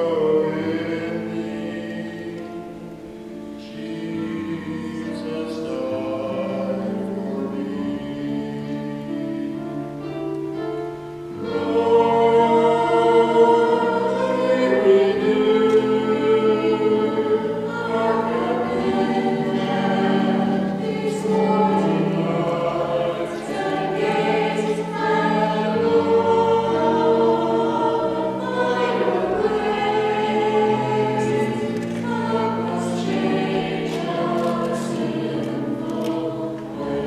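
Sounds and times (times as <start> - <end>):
choir singing slow sacred song: 0.0 - 37.0.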